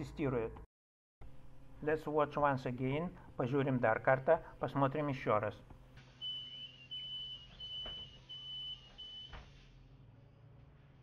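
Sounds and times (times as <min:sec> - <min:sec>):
high-pitched warning beeps: 0:06.2 - 0:09.3.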